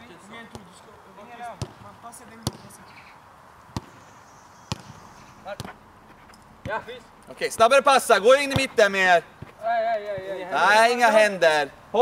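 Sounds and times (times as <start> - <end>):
football kick thuds: 1.6 - 2.7, 3.7 - 4.0, 4.7 - 5.8.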